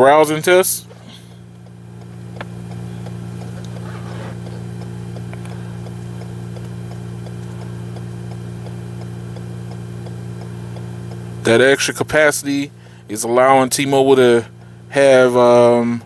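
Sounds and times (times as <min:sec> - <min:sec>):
vehicle idling: 0:00.0 - 0:15.9
light regular ticking: 0:00.0 - 0:16.0.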